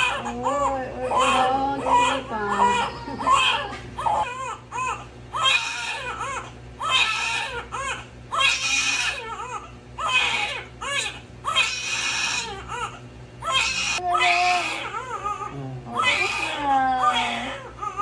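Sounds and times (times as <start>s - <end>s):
newborn baby crying: 0.0s - 18.0s.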